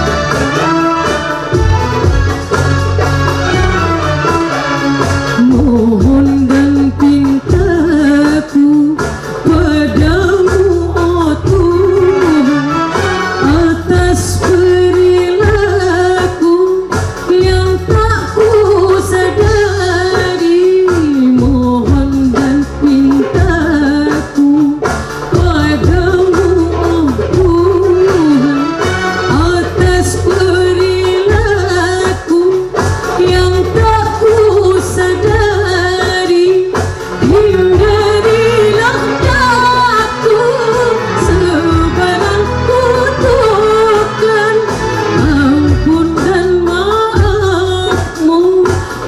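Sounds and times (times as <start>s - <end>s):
small hand drums: 0.0s - 49.0s
woman singing: 0.0s - 49.0s.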